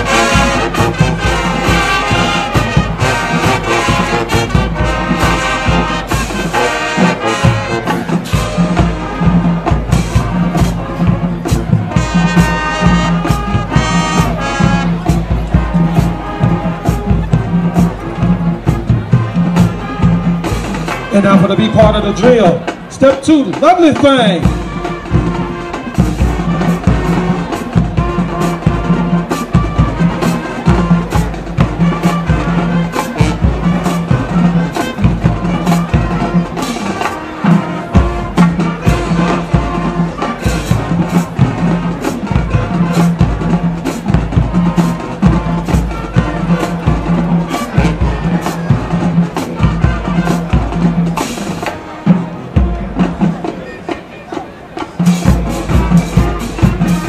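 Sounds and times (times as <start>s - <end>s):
drumline with bass drum hits: 0.0s - 57.0s
marching band brass: 0.0s - 57.0s.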